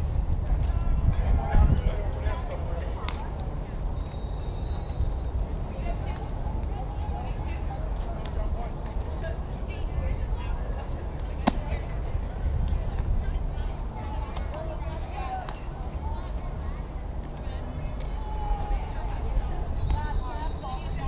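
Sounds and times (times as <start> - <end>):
wind rumble on microphone: 0.0 - 4.0, 4.7 - 21.0
thin whistle-like tone: 4.0 - 5.4, 19.7 - 21.0
sharp crack: 11.4 - 11.8.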